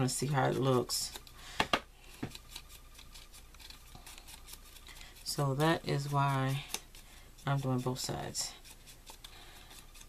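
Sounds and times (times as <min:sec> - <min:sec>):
foam tool rubbing on paper: 0:02.0 - 0:10.0.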